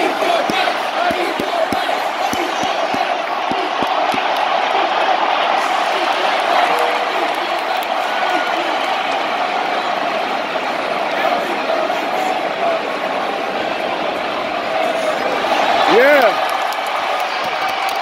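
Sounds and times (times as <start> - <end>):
stadium crowd cheering: 0.0 - 18.0.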